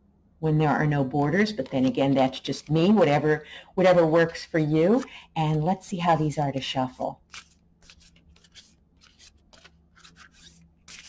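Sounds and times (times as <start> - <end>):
cards being shuffled: 7.2 - 11.0.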